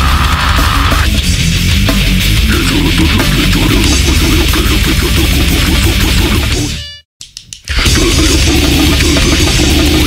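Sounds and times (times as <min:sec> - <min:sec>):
grindcore metal music: 0:00.0 - 0:06.9, 0:07.7 - 0:10.0.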